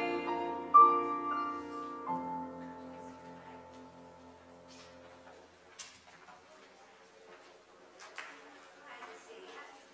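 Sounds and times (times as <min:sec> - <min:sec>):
murmur of people talking: 0:00.0 - 0:09.9.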